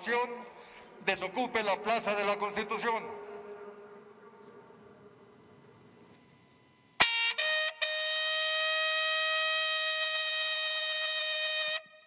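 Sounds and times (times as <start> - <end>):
bugle call: 7.0 - 12.0.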